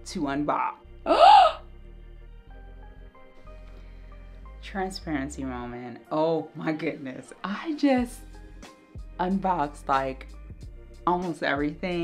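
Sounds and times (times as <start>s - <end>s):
soft background music: 0.0s - 12.0s
woman gasping: 1.1s - 1.6s.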